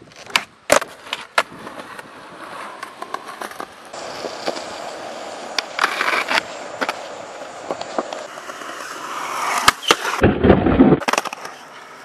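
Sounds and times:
skateboard wheels rolling on concrete: 0:00.0 - 0:12.0
skateboard clacks: 0:05.4 - 0:10.2, 0:11.0 - 0:12.0.

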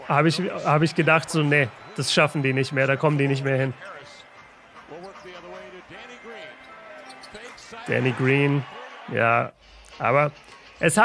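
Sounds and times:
commentator talking: 0:00.0 - 0:04.3, 0:04.9 - 0:11.0
arena crowd noise: 0:00.0 - 0:11.0.

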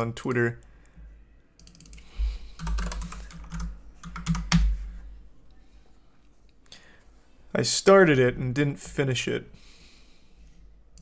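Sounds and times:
typing on a computer keyboard: 0:01.6 - 0:02.0, 0:02.6 - 0:04.8.

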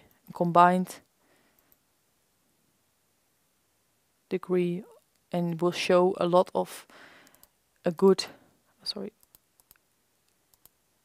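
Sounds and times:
faint computer clicks: 0:07.2 - 0:07.5, 0:09.2 - 0:10.8.

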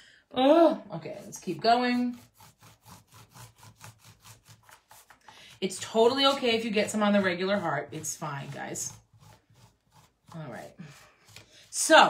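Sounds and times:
stiff brush scratching surface: 0:01.0 - 0:12.0.

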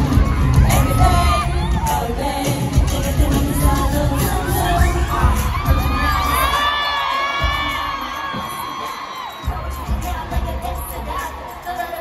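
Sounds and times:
amplified pop music: 0:00.0 - 0:12.0
crowd screaming and cheering: 0:00.0 - 0:12.0.

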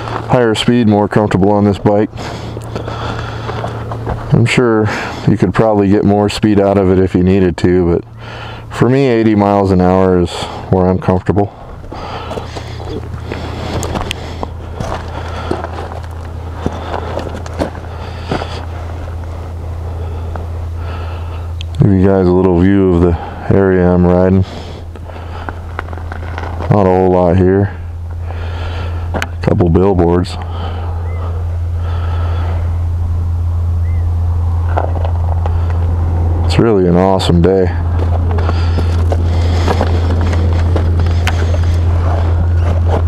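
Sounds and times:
footsteps on gravel: 0:00.0 - 0:05.4, 0:10.4 - 0:21.5, 0:22.3 - 0:29.5, 0:34.7 - 0:36.2, 0:37.1 - 0:43.0
motorcycle engine running: 0:00.0 - 0:43.0
steady low hum: 0:00.0 - 0:43.0.

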